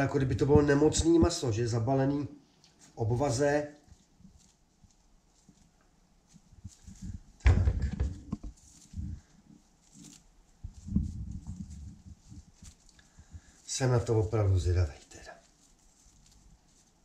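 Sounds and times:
cloth wrapping being unwrapped: 2.5 - 17.0
knocks on wooden worktop: 7.4 - 8.5.

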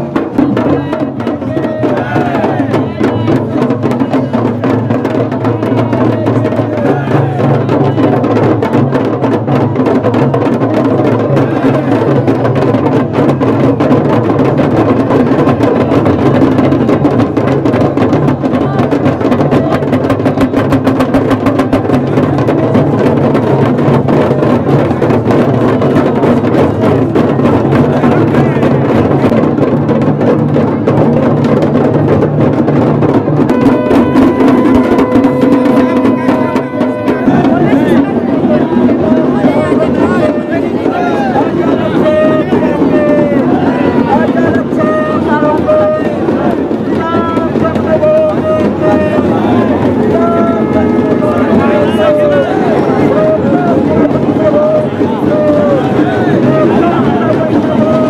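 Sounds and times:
fast procession drumming: 0.0 - 58.0
long steady note: 33.5 - 38.2.

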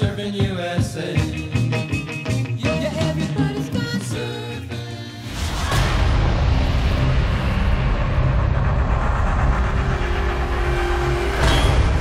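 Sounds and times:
low hum: 5.4 - 12.0.

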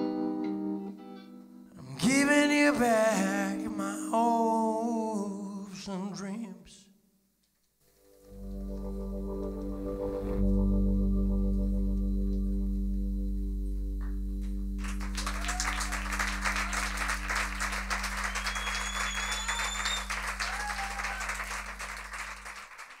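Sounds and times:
band chord on guitars and keyboards: 8.4 - 19.1
audience applause: 14.8 - 23.0
audience cheering: 14.8 - 23.0
person whistling: 15.3 - 21.6.

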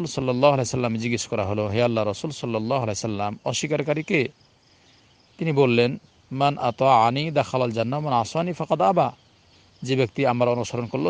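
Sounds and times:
man preaching: 0.0 - 4.3, 5.4 - 9.2, 9.8 - 11.0.

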